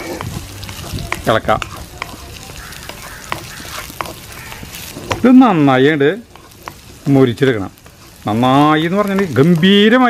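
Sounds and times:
wooden spatula knocking on pan: 0:00.0 - 0:05.4, 0:06.3 - 0:06.8
vegetables sizzling in hot oil: 0:00.0 - 0:10.0.

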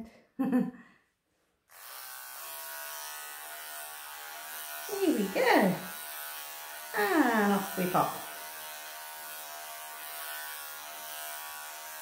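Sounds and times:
electric clippers buzzing: 0:01.7 - 0:12.0.

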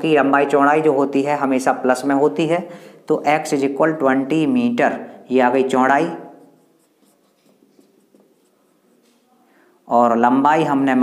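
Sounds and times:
marker pen scratching on whiteboard: 0:05.9 - 0:09.5.

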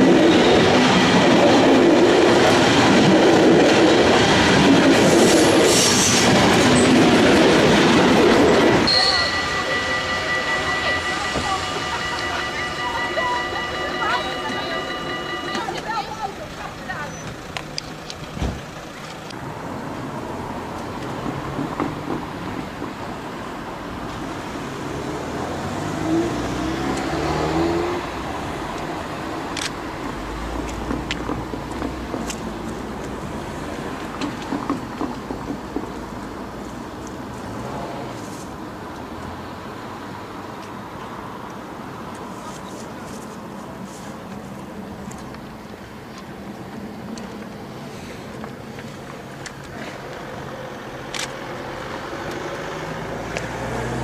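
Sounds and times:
road traffic passing: 0:00.0 - 0:54.0
people talking: 0:09.0 - 0:17.4.

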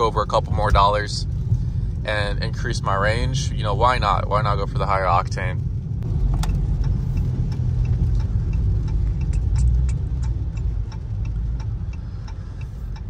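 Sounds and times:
car engine low rumble: 0:00.0 - 0:13.0
faint regular ticking: 0:00.0 - 0:13.0
road noise inside car: 0:00.0 - 0:13.0.

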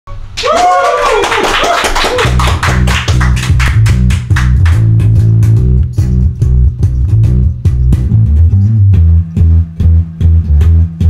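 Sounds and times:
electric bass notes: 0:02.1 - 0:11.0.

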